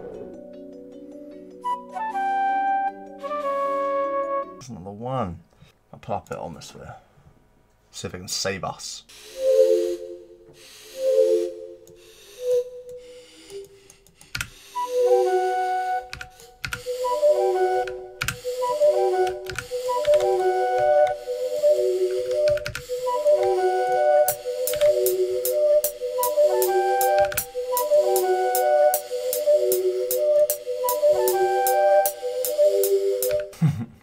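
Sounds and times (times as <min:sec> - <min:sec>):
breathy pipe-like synth melody: 0:00.0 - 0:04.6, 0:09.1 - 0:14.0, 0:14.6 - 0:33.6
mouse and keyboard clicks: 0:13.5 - 0:14.6.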